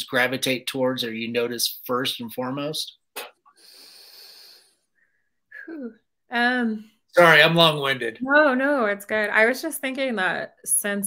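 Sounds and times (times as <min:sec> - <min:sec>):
short vocal sound: 0:03.1 - 0:04.5
person breathing in: 0:03.6 - 0:05.2.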